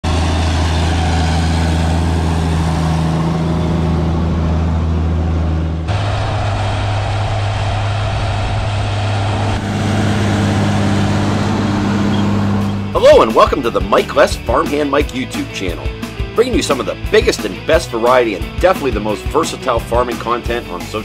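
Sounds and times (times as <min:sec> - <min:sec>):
tractor diesel engine under load: 0:00.0 - 0:17.8.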